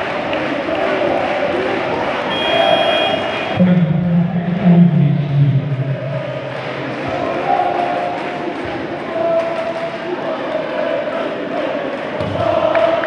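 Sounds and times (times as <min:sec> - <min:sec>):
crowd chanting and cheering: 0:00.0 - 0:13.0
high whistle-like tone: 0:02.3 - 0:03.6
man's low voice: 0:02.7 - 0:09.8.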